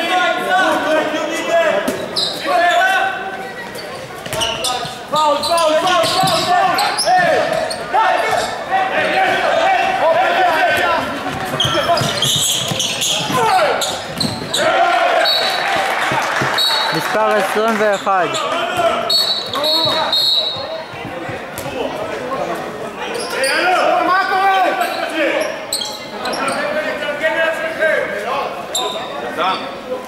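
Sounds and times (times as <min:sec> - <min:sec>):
players calling out: 0:00.0 - 0:22.2
shoes squeaking: 0:01.9 - 0:09.4, 0:11.1 - 0:21.9, 0:22.5 - 0:23.8, 0:24.8 - 0:26.8
ball bouncing on wooden court: 0:11.3 - 0:13.5, 0:14.1 - 0:14.6.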